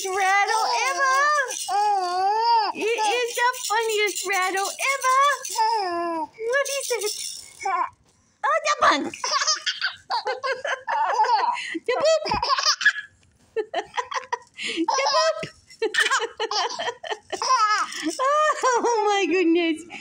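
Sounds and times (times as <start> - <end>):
baby laughing: 0.0 - 7.2, 9.0 - 13.1, 13.8 - 18.9.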